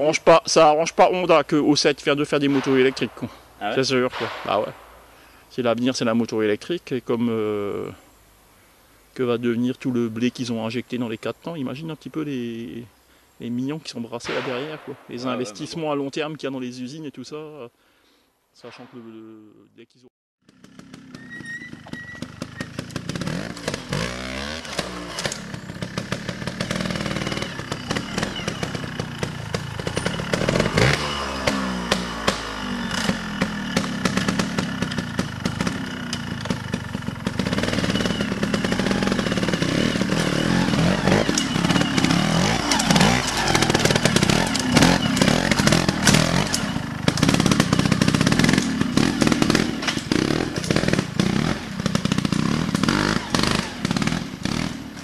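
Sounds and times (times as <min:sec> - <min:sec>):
motorcycle engine revving: 0:20.4 - 0:55.0.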